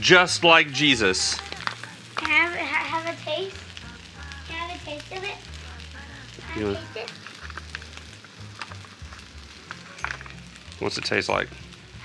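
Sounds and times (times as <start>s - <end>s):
rice sizzling on a griddle: 0.0s - 12.0s.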